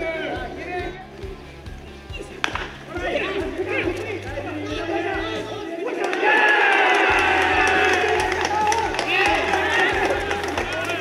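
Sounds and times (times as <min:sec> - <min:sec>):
background music: 0:00.0 - 0:11.0
players shouting and cheering: 0:00.0 - 0:11.0.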